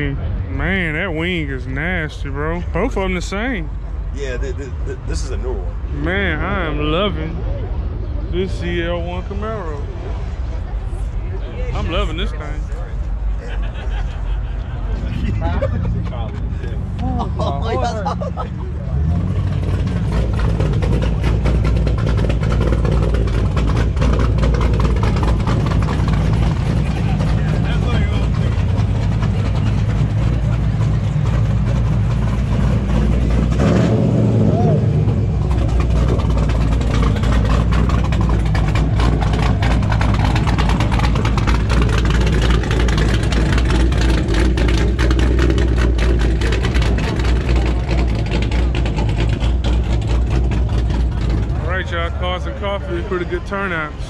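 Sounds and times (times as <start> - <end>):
people talking: 0.0 - 7.6, 8.3 - 9.9, 11.2 - 19.2, 26.8 - 28.8, 51.3 - 54.0
car engine idling: 0.0 - 54.0.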